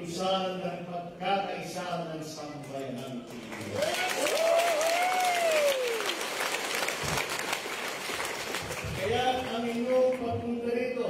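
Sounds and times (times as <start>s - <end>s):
crowd applauding: 3.4s - 10.2s.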